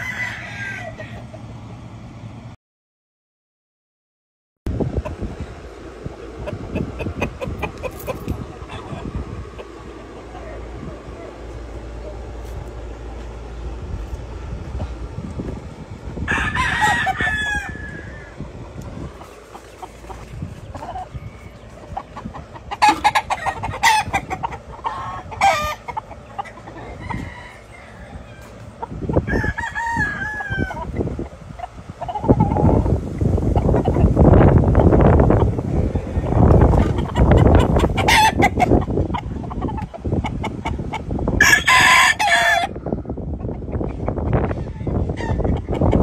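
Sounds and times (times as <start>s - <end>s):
roosters crowing: 0.0s - 1.9s, 5.1s - 43.4s, 44.1s - 46.0s
low rumble: 4.7s - 39.8s.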